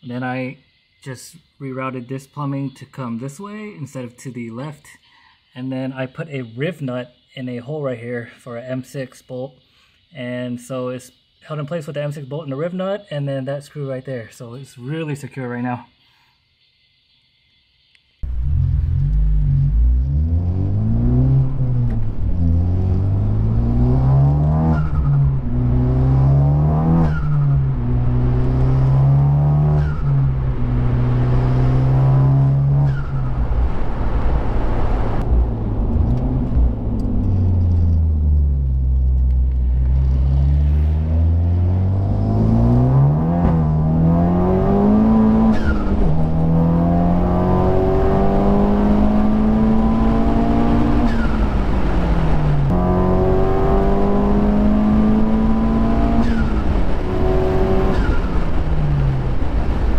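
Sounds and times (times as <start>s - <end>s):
car engine accelerating through gears: 18.2s - 59.9s.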